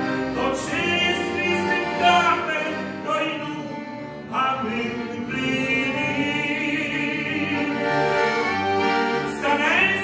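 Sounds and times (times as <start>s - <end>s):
man singing with vibrato: 0.0s - 10.0s
piano accordion: 0.0s - 10.0s.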